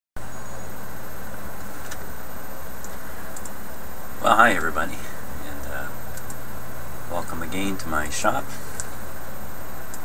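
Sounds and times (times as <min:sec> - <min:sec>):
low hum: 0:00.2 - 0:10.0.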